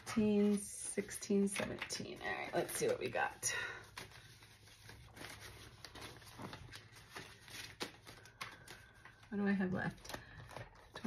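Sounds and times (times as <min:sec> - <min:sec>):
banknotes rustling and flicking: 0:00.0 - 0:11.0.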